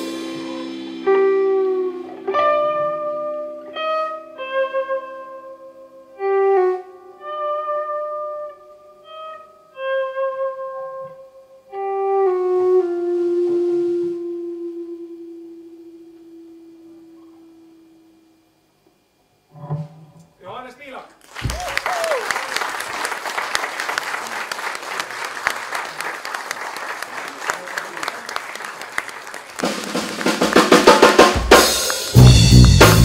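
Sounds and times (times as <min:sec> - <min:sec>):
electric guitar sustained notes: 0:00.0 - 0:18.7, 0:25.0 - 0:33.0.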